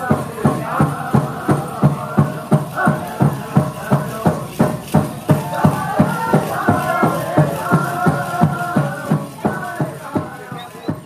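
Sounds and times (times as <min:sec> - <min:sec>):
big drum steady beat: 0:00.0 - 0:11.0
high voices singing: 0:00.0 - 0:11.0.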